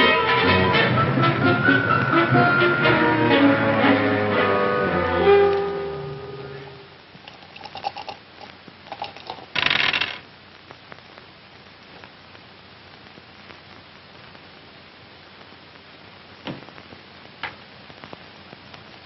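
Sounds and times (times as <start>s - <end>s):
orchestral film music: 0.0s - 6.8s.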